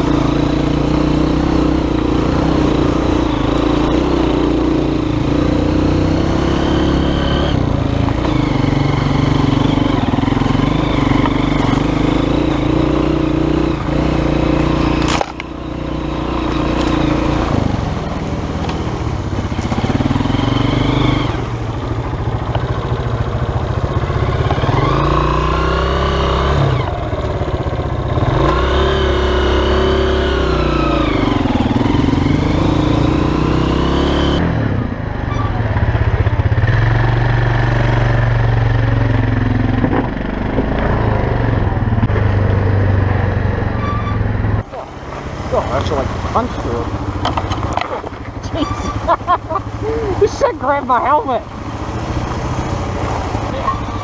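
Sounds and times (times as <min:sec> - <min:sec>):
motorcycle engine revving: 0:00.0 - 0:54.0
quad bike engine: 0:00.0 - 0:54.0.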